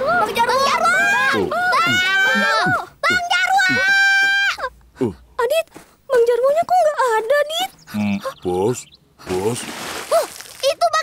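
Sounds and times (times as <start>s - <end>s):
man talking: 7.9s - 9.8s.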